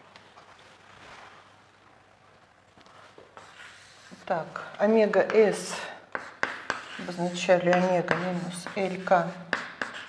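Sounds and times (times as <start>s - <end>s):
chalk scratching on blackboard: 2.9s - 10.0s
woman speaking: 4.1s - 6.0s, 7.0s - 9.5s.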